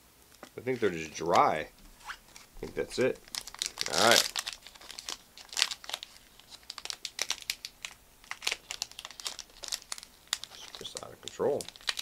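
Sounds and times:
wrapper crinkling and crackling: 0.3 - 12.0.

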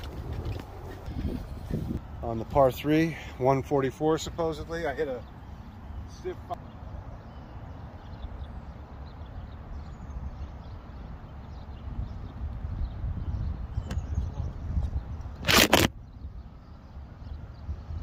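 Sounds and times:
wind buffeting microphone: 0.0 - 2.8, 9.2 - 18.0
loud crackling burst: 15.4 - 15.9.

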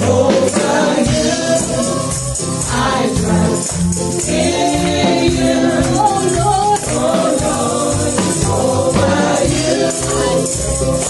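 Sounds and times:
band with drums and bass: 0.0 - 11.0
tambourines jingling: 0.0 - 11.0
voices singing: 0.0 - 11.0.

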